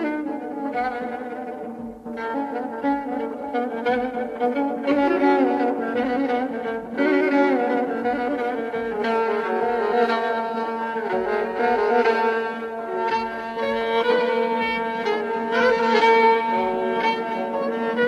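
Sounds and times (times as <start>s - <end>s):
bowed string melody: 0.0s - 18.0s.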